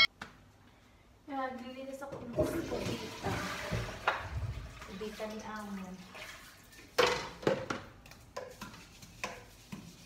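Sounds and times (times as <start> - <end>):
toilet flushing: 2.3 - 7.0.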